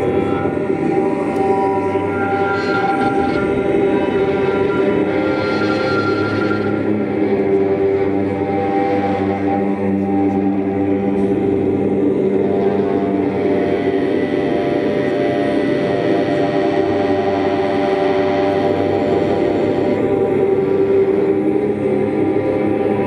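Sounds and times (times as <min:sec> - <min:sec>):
drone of sustained tones: 0:00.0 - 0:23.0.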